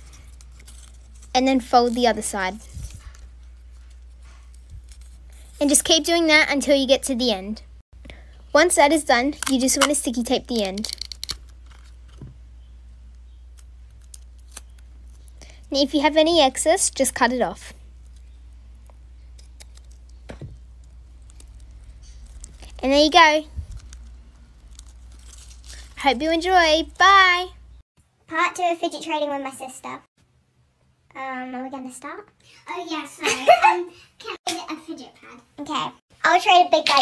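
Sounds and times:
paper strip rustling: 0.0 - 6.1, 18.0 - 27.0.

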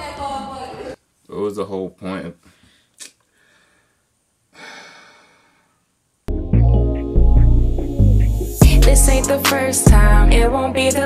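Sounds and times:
person breathing close on microphone: 2.4 - 5.8.

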